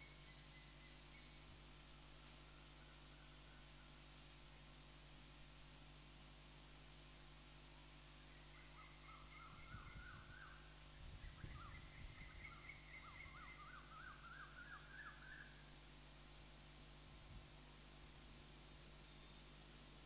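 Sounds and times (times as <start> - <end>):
bird chirps: 0.0 - 1.5, 8.3 - 10.6, 11.2 - 15.6.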